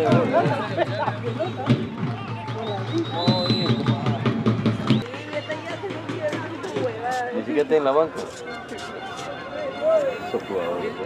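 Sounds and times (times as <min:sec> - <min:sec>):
background chatter: 0:00.0 - 0:11.0
men talking and calling out: 0:00.0 - 0:11.0.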